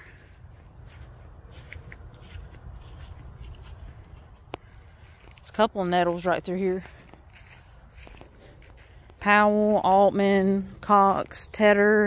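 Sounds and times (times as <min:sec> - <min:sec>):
footsteps on grass: 0:00.0 - 0:11.8
low outdoor rumble: 0:00.0 - 0:12.0
light ticks: 0:04.4 - 0:05.5.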